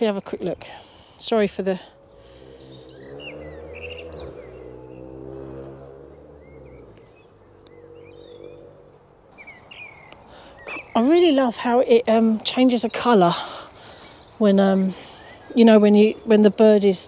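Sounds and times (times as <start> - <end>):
birds singing: 0.0 - 17.0
low engine drone: 1.9 - 9.4.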